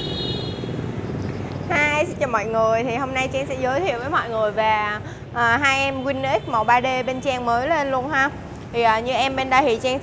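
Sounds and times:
woman's high-pitched voice: 1.7s - 10.0s.

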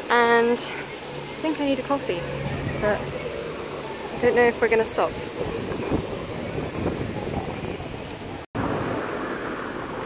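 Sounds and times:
city street low rumble: 0.0s - 10.0s.

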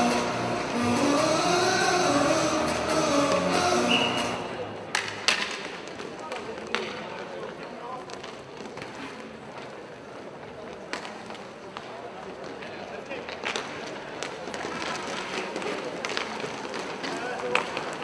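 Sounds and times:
indistinct voices: 0.0s - 5.0s
sticks and puck clacking: 0.0s - 9.8s, 10.5s - 18.0s
skate wheels rolling and scraping: 0.0s - 18.0s.

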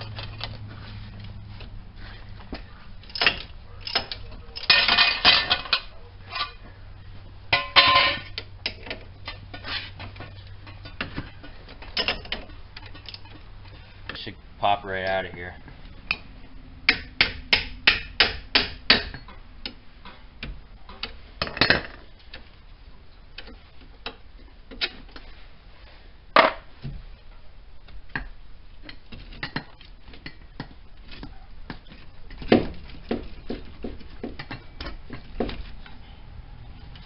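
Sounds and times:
metal knocks and clanks: 7.5s - 13.4s.

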